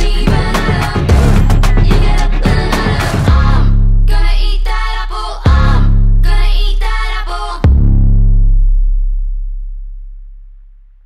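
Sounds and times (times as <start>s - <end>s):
deep electronic bass note: 0.0s - 4.2s, 7.6s - 11.0s.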